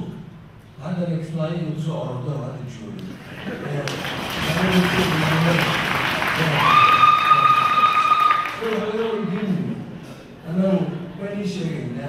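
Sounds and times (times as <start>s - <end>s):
audience applause: 3.2s - 9.5s.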